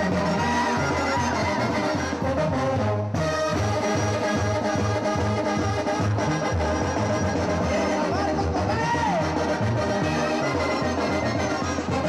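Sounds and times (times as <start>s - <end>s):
low brass bass line: 0.0s - 12.0s
trumpets and trombones: 0.0s - 12.0s.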